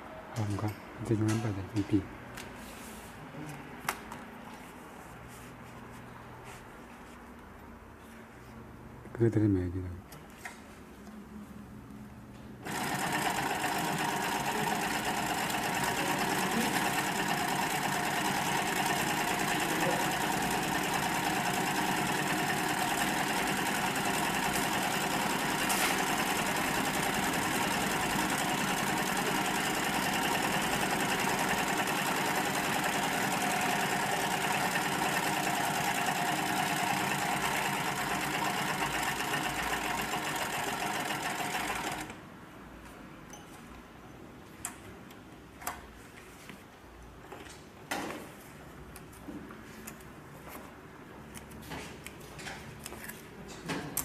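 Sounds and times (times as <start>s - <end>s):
sewing machine running: 12.6s - 42.2s.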